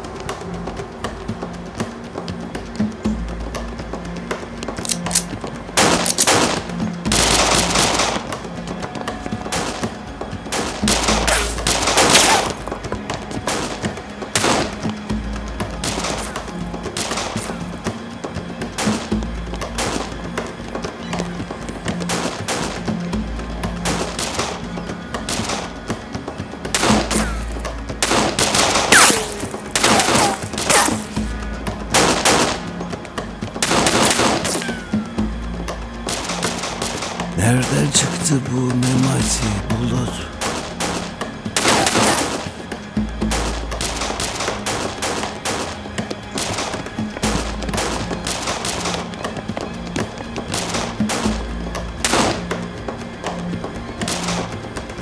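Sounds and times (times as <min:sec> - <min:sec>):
dramatic music with pulsing beat: 0:00.0 - 0:55.0
gunfire bursts: 0:04.8 - 0:08.3, 0:26.8 - 0:31.2, 0:40.4 - 0:42.5.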